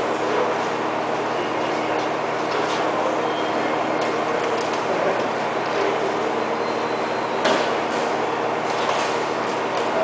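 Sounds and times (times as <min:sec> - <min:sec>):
loud machinery noise: 0:00.0 - 0:10.0.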